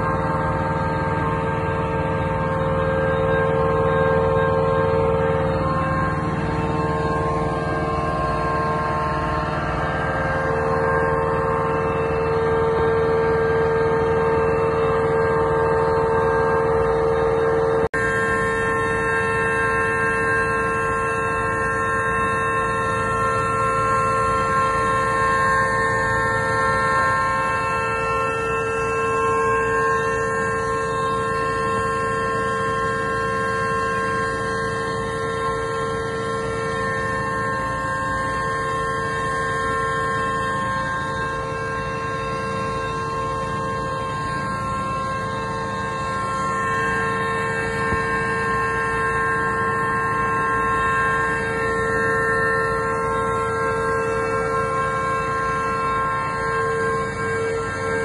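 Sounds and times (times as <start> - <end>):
steady machine hum: 0.0 - 58.0.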